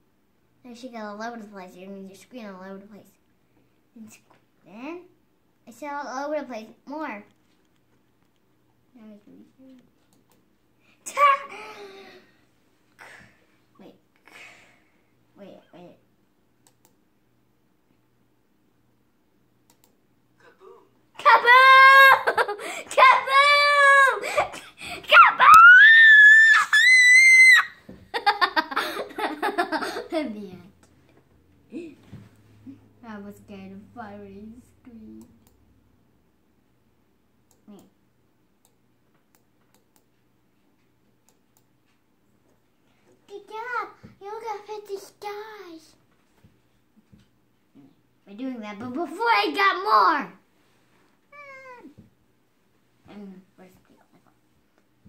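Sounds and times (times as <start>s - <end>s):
girl shrieking with laughter: 21.4s - 28.3s.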